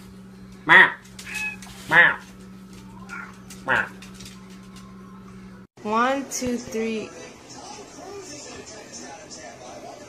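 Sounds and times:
cat meowing: 3.0 - 3.4.

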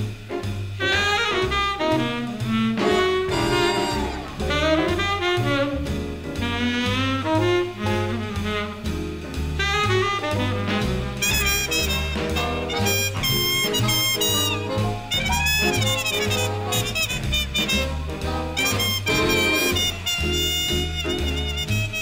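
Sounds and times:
big band swing music: 0.0 - 22.0.

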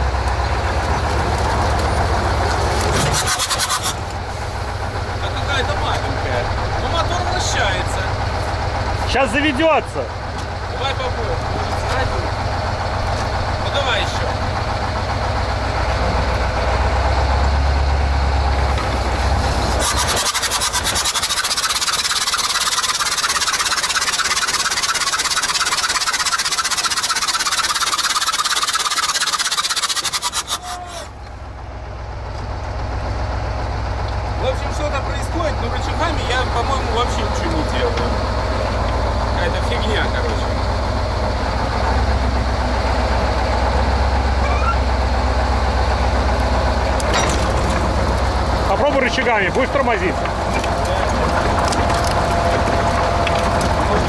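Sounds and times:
steel tracks clanking: 0.0 - 31.6, 34.4 - 54.0
diesel truck engine under load: 0.0 - 54.0
fast metallic rattling clatter: 1.3 - 10.1, 18.8 - 30.8, 46.8 - 54.0
squeals: 19.4 - 31.3, 44.4 - 45.0, 47.0 - 47.8.

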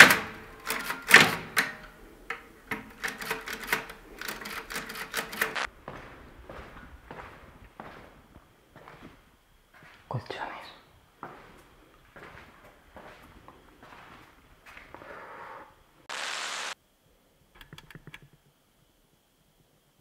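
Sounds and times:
typewriter keys clacking: 0.0 - 1.8, 2.7 - 5.7
footsteps on hard floor: 5.6 - 10.1, 11.2 - 15.1.

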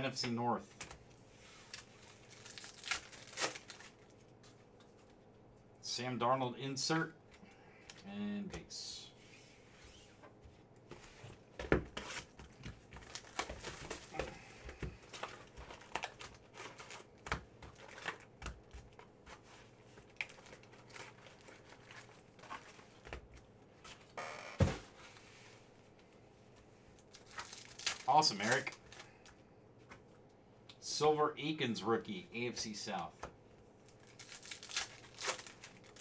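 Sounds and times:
foil wrapper crinkling and tearing: 1.6 - 4.2, 13.0 - 14.2, 15.1 - 19.0, 20.0 - 22.9, 27.0 - 29.1, 33.9 - 36.0.

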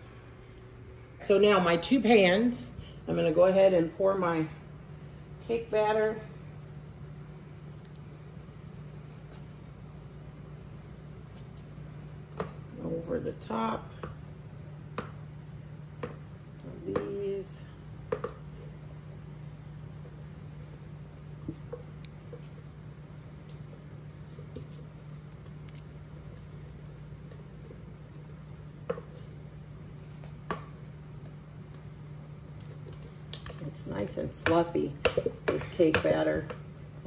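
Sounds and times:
steady low hum: 0.0 - 37.0.

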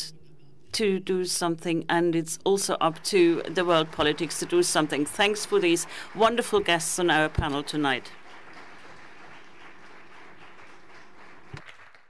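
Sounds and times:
audience applauding: 3.1 - 12.0.

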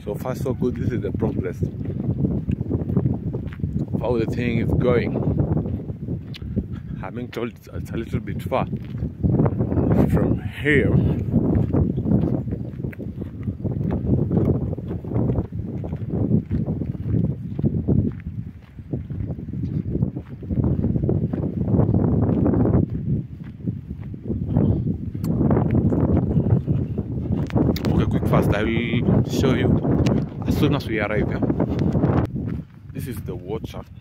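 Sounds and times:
footsteps on dirt road: 0.0 - 34.0
wind rumble: 0.0 - 34.0
microphone handling noise: 1.0 - 33.2.

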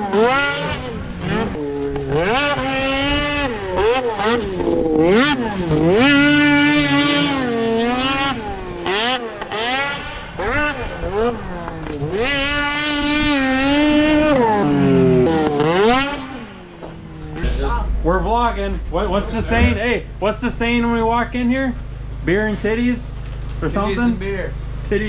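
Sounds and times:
snowmobile engine revving: 0.0 - 21.7.

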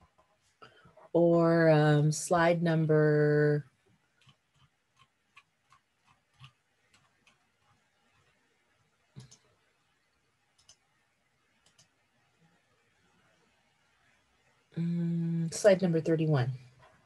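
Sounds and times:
faint computer clicks: 9.2 - 9.5, 10.6 - 10.8, 11.6 - 11.9.

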